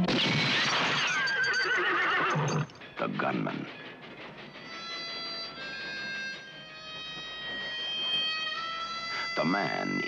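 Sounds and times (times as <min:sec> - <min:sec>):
train pulling away: 0:02.1 - 0:09.5
harmonica long held notes: 0:04.6 - 0:10.0.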